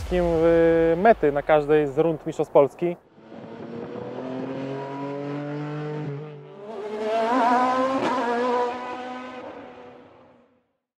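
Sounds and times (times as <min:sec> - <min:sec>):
rally car engine under load: 0:03.2 - 0:10.4.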